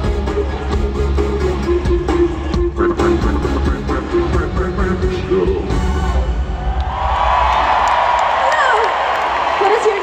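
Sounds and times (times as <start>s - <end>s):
live pop music with heavy bass: 0.0s - 6.5s.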